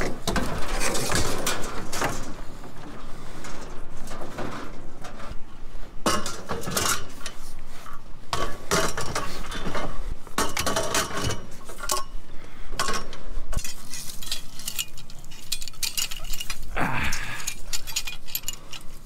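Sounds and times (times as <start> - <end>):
scrap metal tubing clanking: 13.6 - 19.0.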